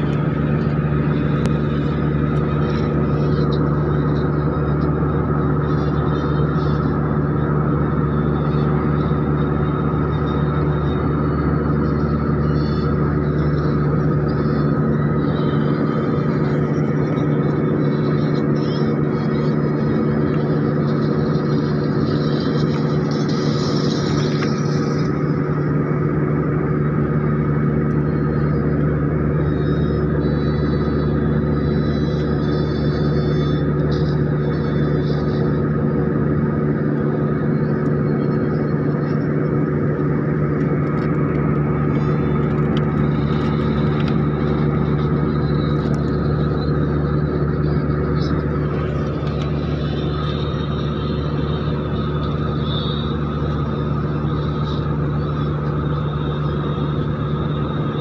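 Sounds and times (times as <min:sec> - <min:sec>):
airliner cabin drone: 0:00.0 - 0:58.0.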